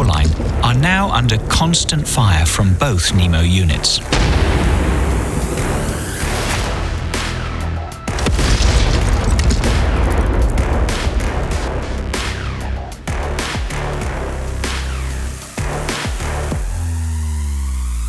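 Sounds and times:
mortar fire booms: 0:00.0 - 0:02.3, 0:04.0 - 0:07.1, 0:08.1 - 0:13.9
background music: 0:00.0 - 0:18.0.

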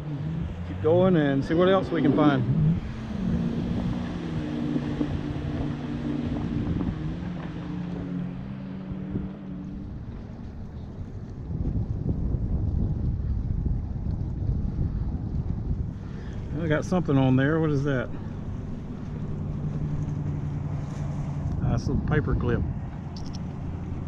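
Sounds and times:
jet ski engines running: 0:00.0 - 0:24.0
wind rumbling on microphone: 0:00.0 - 0:24.0.

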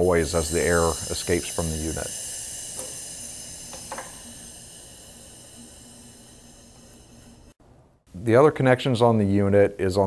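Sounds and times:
air hissing from valve: 0:00.0 - 0:07.6.

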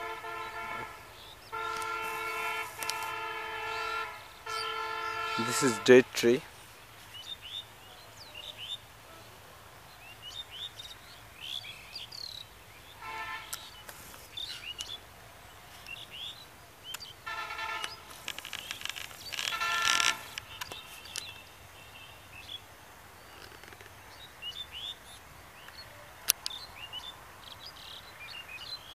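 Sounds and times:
distant horn: 0:00.0 - 0:06.4, 0:12.9 - 0:13.9, 0:17.2 - 0:21.1
birds chirping: 0:00.0 - 0:28.9.

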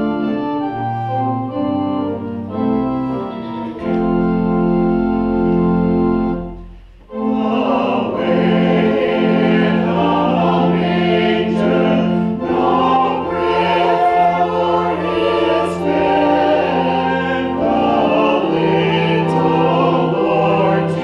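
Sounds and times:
mixed choir singing: 0:07.1 - 0:21.0.

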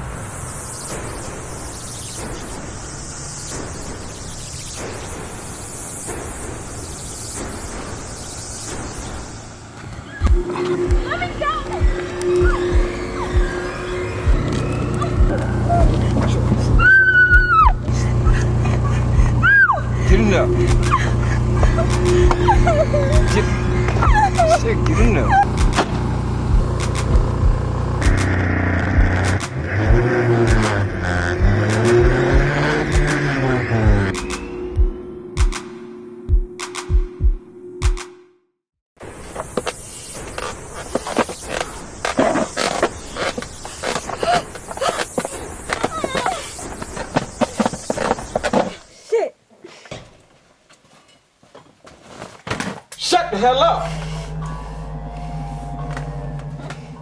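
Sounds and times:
steady rushing hiss: 0:00.0 - 0:12.1, 0:39.0 - 0:49.1
car engine revving and driving off: 0:17.9 - 0:34.7.

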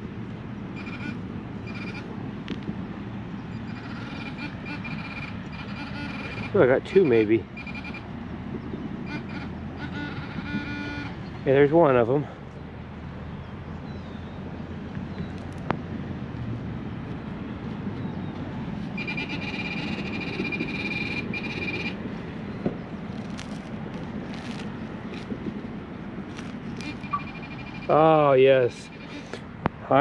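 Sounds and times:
metal detector alert tone: 0:00.8 - 0:02.1, 0:03.6 - 0:08.0, 0:19.0 - 0:22.0, 0:26.8 - 0:29.3
scratching grass and soil by hand: 0:22.9 - 0:27.1.

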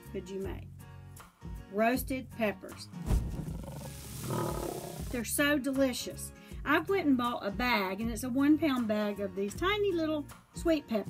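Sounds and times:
gorilla roar: 0:03.4 - 0:05.2.

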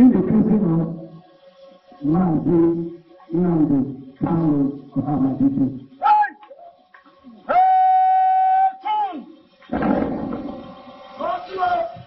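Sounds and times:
person shouting: 0:06.0 - 0:06.4.

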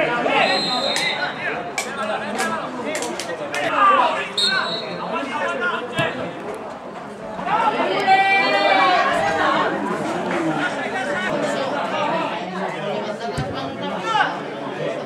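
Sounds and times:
people talking and calling out: 0:00.0 - 0:15.0.

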